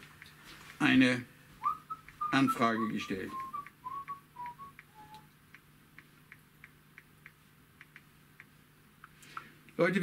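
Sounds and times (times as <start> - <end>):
short whistled notes: 1.6 - 5.3.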